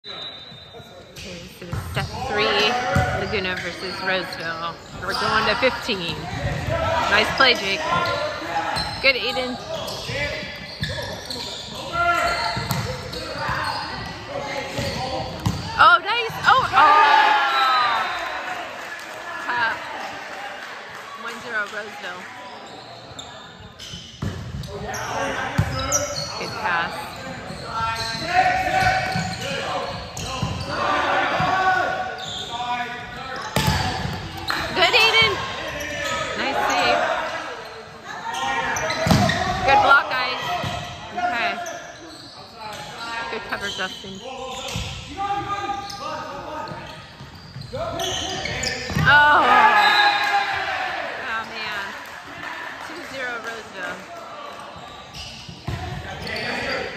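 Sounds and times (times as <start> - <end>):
players shouting: 2.0 - 21.4, 24.9 - 41.8, 47.9 - 51.6.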